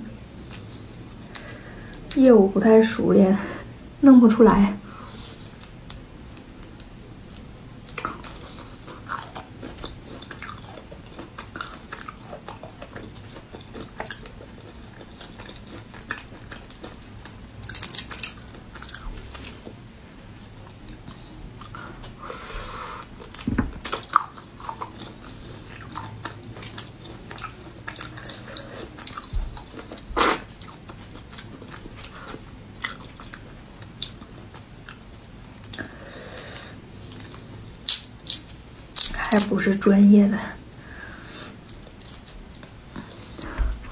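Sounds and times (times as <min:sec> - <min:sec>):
shrimp shells cracking: 0:37.2 - 0:39.5.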